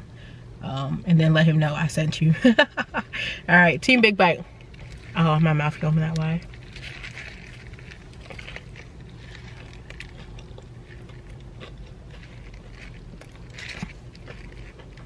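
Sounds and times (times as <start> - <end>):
low steady hum: 0.0 - 15.0
chewing crunchy food: 4.5 - 15.0.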